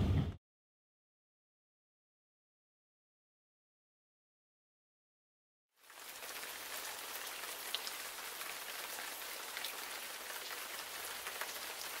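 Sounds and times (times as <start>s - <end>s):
falling rain hiss: 5.8s - 12.0s
raindrops ticking: 5.8s - 12.0s.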